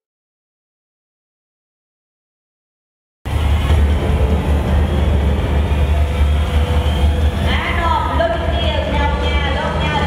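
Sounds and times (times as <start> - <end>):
music with deep rumbling drone: 3.3 - 10.0.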